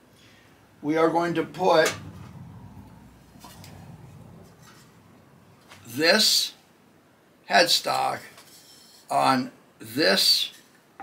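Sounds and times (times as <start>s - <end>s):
low room rumble: 0.0s - 7.2s.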